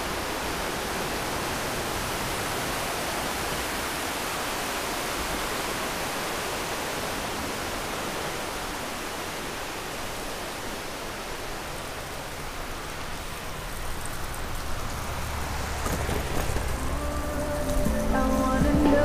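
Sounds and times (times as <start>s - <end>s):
rushing noise of bike riding: 0.0s - 19.0s.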